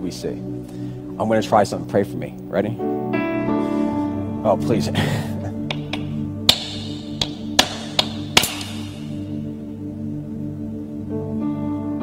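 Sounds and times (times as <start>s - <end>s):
soft music pad: 0.0s - 12.0s
hammer striking rock: 5.7s - 9.2s.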